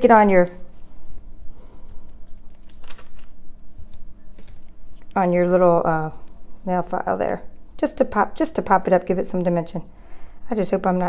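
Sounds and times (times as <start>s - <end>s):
paper pieces clicking and rustling: 2.4s - 5.1s.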